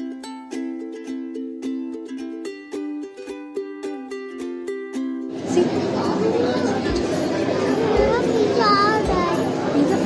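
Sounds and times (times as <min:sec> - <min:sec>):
background chatter of voices: 0:05.3 - 0:10.0
young child's high-pitched voice: 0:07.6 - 0:09.6.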